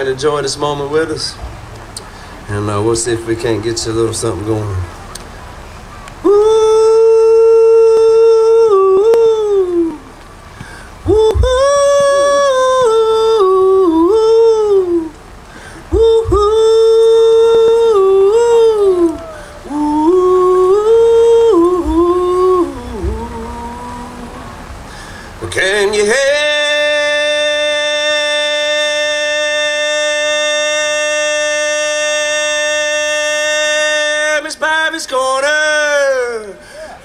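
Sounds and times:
man yodel-like hollering: 6.2s - 10.2s, 11.0s - 15.1s, 15.8s - 24.7s, 25.7s - 37.0s.

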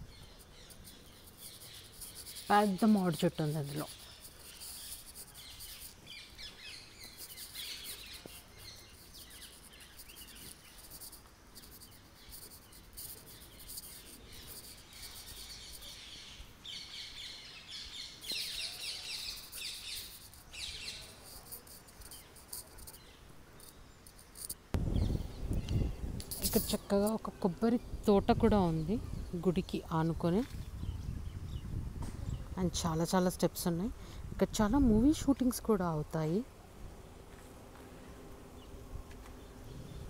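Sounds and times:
insects chirping: 0.0s - 31.9s
birds chirping: 0.0s - 32.9s.

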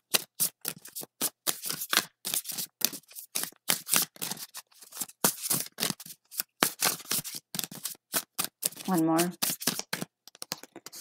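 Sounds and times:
cards being shuffled: 0.1s - 11.0s.

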